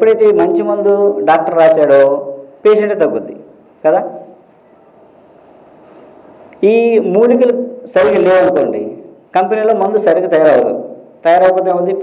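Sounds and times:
man talking: 0.0s - 4.4s, 6.6s - 12.0s.

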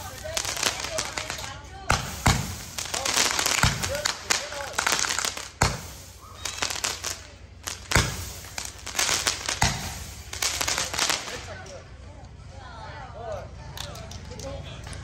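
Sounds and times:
fireworks bangs: 0.0s - 11.8s
fireworks crackling and fizzing: 0.0s - 12.1s.

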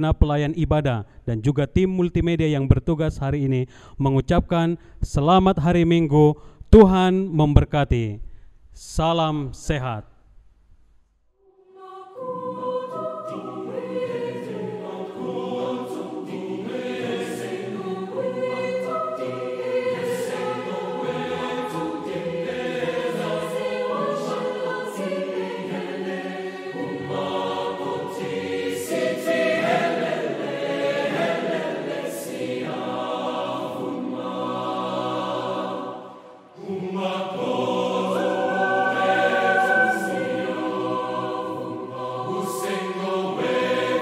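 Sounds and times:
choir singing: 11.5s - 44.0s.

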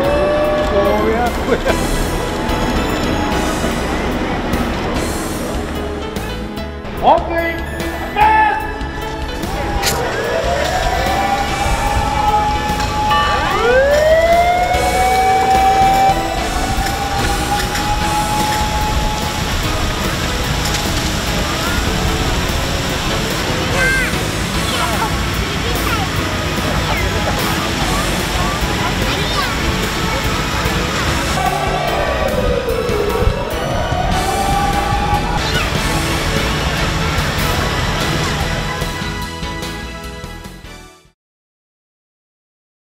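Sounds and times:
fire engine sirens wailing: 0.0s - 5.9s, 7.8s - 39.5s
fire hoses spraying water: 0.0s - 6.5s, 8.8s - 39.9s.

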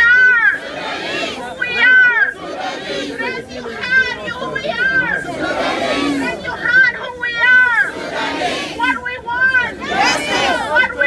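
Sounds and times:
crowd chanting: 0.0s - 11.0s
high shouted call: 0.0s - 11.0s.

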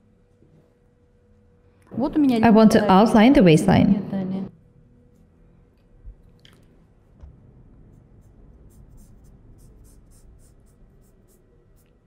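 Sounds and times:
marker pen drawing on fabric: 7.8s - 12.0s.

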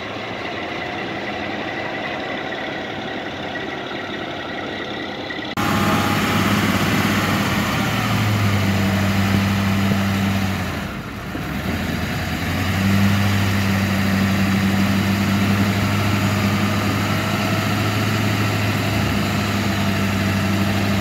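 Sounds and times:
diesel truck engine revving: 0.0s - 21.0s.

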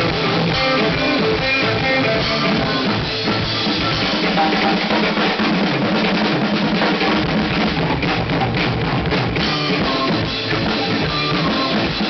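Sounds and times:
acoustic drum kit rock beat: 0.0s - 12.0s
recorded rock band with guitar: 0.0s - 12.0s.

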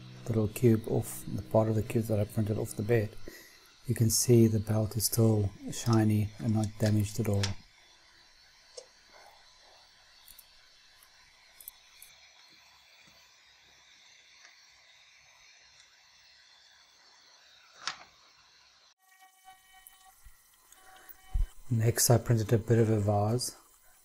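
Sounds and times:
faint room hiss: 0.0s - 24.0s
faint steady tones: 0.0s - 24.0s.

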